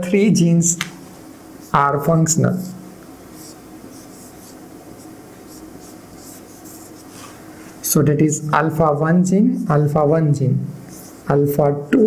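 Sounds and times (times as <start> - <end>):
marker scratching on whiteboard: 1.6 - 7.4, 10.8 - 11.3.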